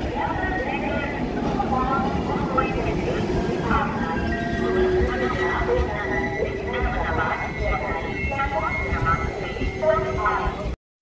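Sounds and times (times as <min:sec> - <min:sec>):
indistinct voices: 0:00.0 - 0:10.8.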